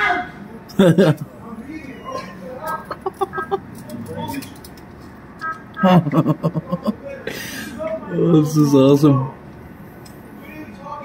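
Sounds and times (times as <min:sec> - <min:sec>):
person giggling: 0:02.8 - 0:04.1, 0:05.8 - 0:07.0.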